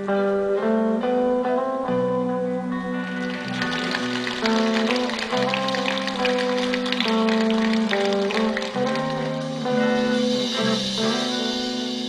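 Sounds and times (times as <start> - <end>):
band playing instrumental reggae: 2.9 - 12.0.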